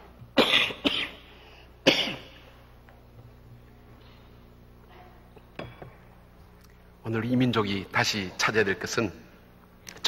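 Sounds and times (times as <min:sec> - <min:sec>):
man coughing: 0:00.4 - 0:02.4.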